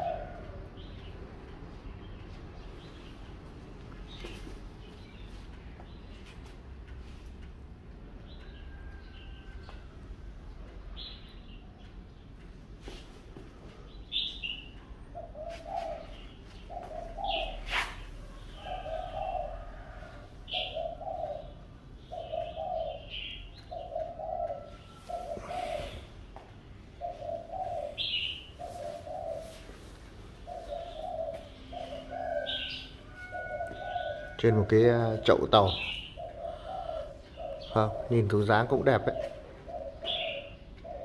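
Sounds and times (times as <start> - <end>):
dove cooing: 0.0 - 1.1, 13.8 - 41.0
small bird chirping: 13.8 - 26.1, 27.0 - 29.8.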